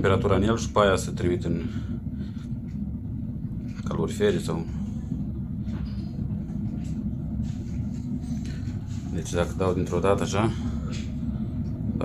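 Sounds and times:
pellet burner low rumble: 0.0 - 12.0.

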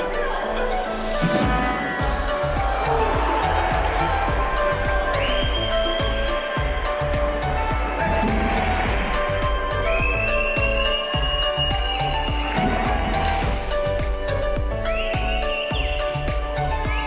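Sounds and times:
music with heavy bass beat: 1.1 - 17.0.

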